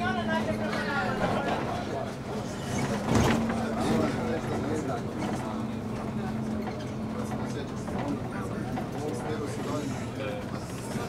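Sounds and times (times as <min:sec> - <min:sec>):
bus engine hum: 0:00.0 - 0:11.0.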